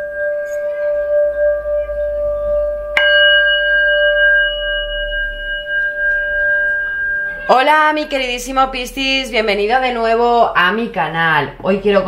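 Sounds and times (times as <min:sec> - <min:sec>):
singing bowl strike: 0:00.0 - 0:09.2
singing bowl ringing: 0:00.0 - 0:10.0.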